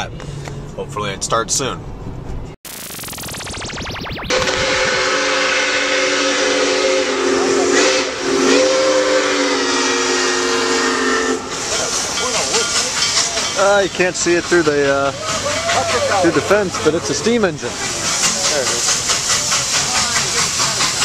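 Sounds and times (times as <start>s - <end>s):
steam whistle blowing: 4.4s - 11.7s
steam hissing: 17.8s - 21.0s.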